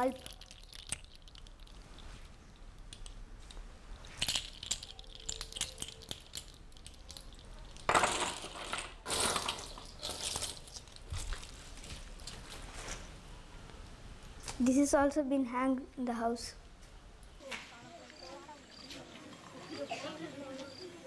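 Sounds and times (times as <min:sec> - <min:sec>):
seashells clinking and rattling: 0:00.0 - 0:12.6.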